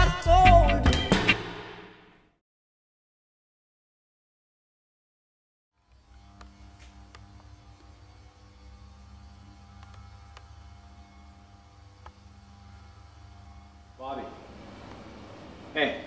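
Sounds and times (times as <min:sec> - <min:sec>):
low electrical hum: 0:05.8 - 0:16.0.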